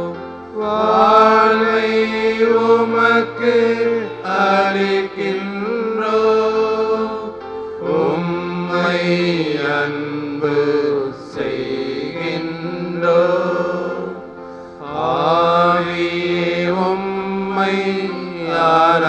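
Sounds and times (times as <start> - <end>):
person singing a hymn: 0.0 - 19.0
sustained musical accompaniment: 0.0 - 19.0.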